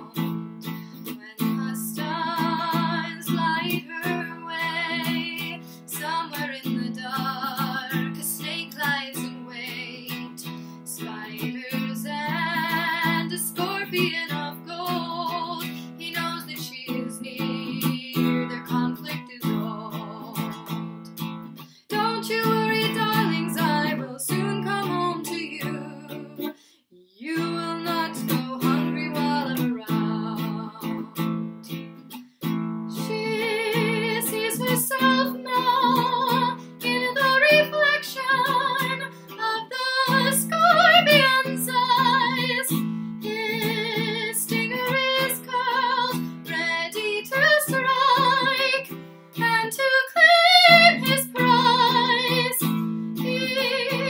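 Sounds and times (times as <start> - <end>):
woman singing with vibrato: 0.0 - 20.9, 21.9 - 31.8, 32.9 - 54.0
ukulele strumming: 0.0 - 26.5, 27.3 - 54.0.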